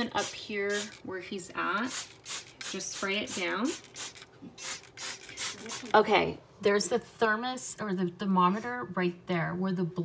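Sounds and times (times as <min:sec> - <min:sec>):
spray bottle hissing squirts: 0:00.2 - 0:01.0, 0:01.8 - 0:06.0.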